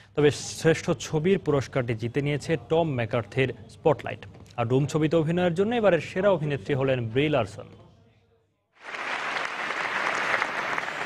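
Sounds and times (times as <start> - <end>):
audience applause: 8.8 - 11.0.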